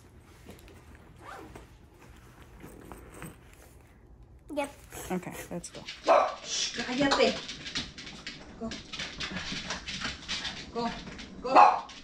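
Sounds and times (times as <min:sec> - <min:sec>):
backpack zipper being pulled: 0:01.2 - 0:01.6.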